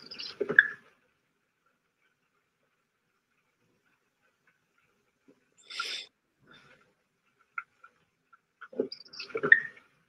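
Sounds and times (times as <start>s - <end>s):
person sniffing sharply: 5.6s - 6.1s
soft breath: 5.6s - 7.0s.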